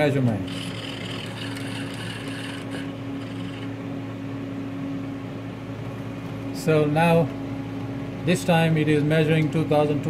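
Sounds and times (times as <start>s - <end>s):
machine hum: 0.0s - 10.0s
high-pitched whir: 0.5s - 3.8s.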